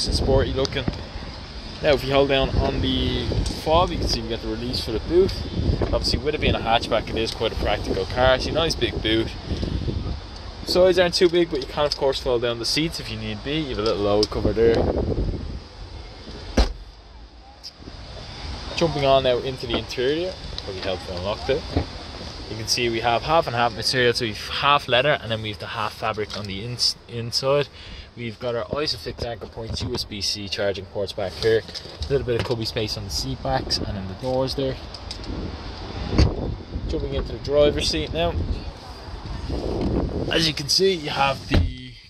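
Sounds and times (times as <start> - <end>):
wind noise on microphone: 0.0 - 11.9, 13.4 - 16.8, 32.9 - 41.8
car tailgate shutting thud: 16.5 - 16.8, 41.4 - 41.8.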